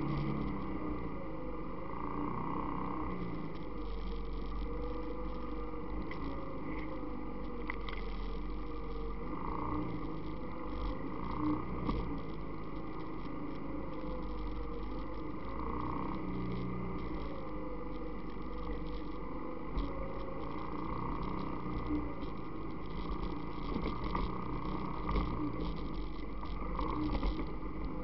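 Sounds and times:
atv engine running: 0.0 - 1.1, 1.9 - 28.0.

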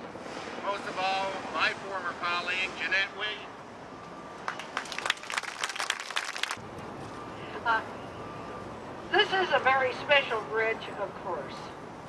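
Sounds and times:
audience clapping: 4.4 - 6.6.

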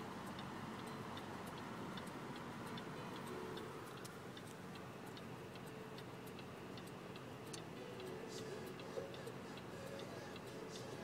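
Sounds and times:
low car cabin hum: 0.0 - 11.0
turn signal ticking: 0.0 - 11.0.

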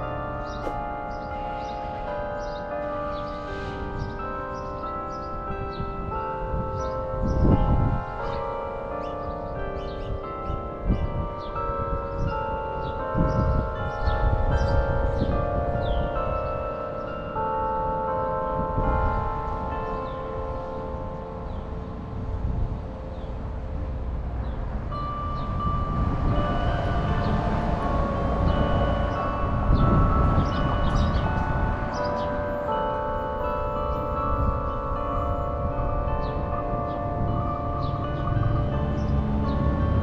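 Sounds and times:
tower bells playing a tune: 0.0 - 40.0.

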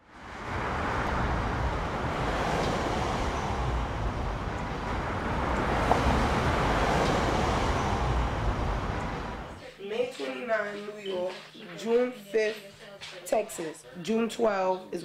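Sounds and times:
city street traffic: 0.0 - 13.8.

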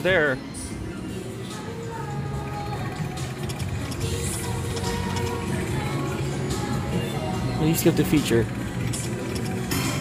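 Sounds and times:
slot machine music and effects: 7.6 - 10.0.

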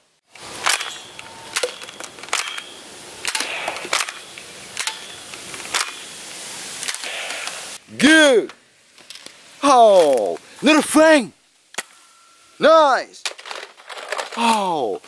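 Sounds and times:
steady outdoor hiss: 0.0 - 15.0.

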